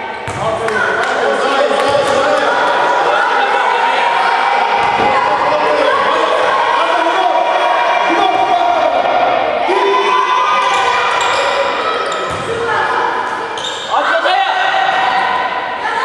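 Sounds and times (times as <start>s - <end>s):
basketball bouncing on floor: 0.2s - 0.4s, 12.3s - 12.6s.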